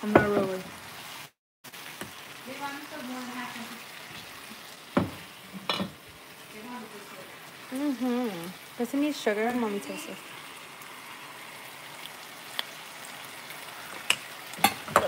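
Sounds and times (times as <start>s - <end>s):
onions sizzling in a skillet: 0.0s - 15.0s.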